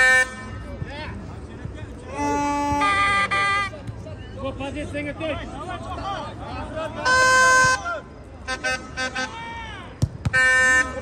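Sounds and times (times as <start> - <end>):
loud horn blasts: 0.0 - 0.7, 2.1 - 3.8, 7.0 - 9.4, 10.3 - 11.0
spectators' voices: 0.0 - 11.0.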